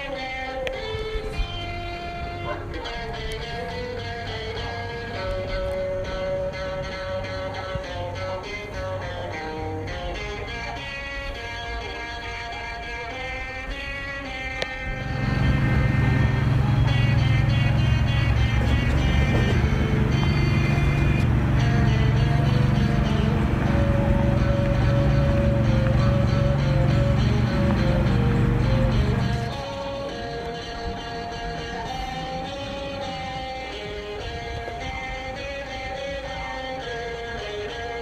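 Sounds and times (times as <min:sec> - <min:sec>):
car engine humming: 0:00.0 - 0:38.0
guitar music: 0:00.0 - 0:38.0.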